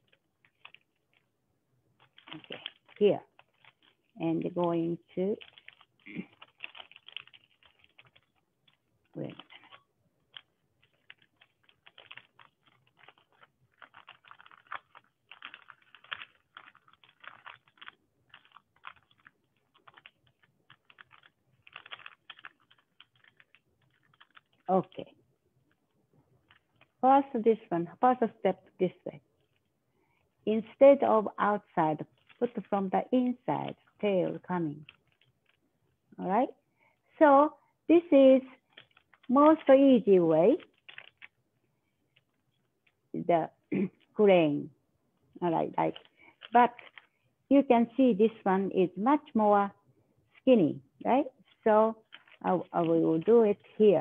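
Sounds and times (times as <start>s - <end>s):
paper being folded and creased: 0.0s - 1.4s, 2.0s - 28.4s, 31.6s - 36.0s, 38.5s - 43.1s, 45.7s - 47.2s, 51.4s - 54.0s.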